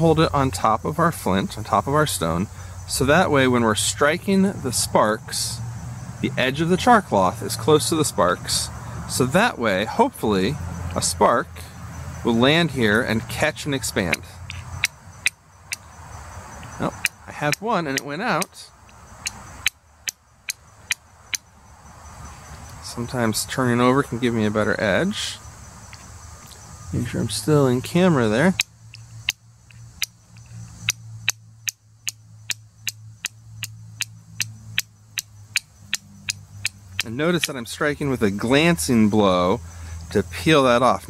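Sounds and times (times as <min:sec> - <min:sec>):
steel striker clicking on flint: 0:14.5 - 0:15.8, 0:17.0 - 0:21.4, 0:28.5 - 0:37.6.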